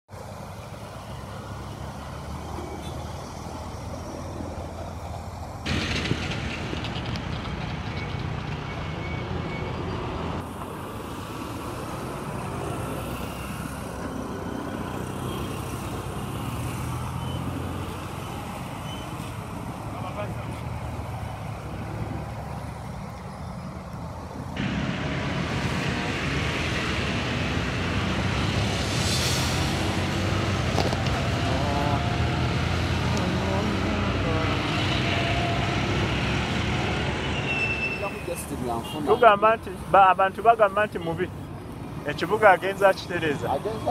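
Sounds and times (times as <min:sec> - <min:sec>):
traffic engines rumbling: 0:00.1 - 0:43.9.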